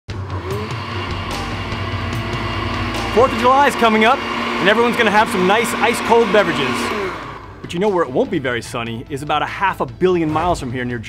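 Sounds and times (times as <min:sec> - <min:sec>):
blender motor hum: 0:00.1 - 0:07.7.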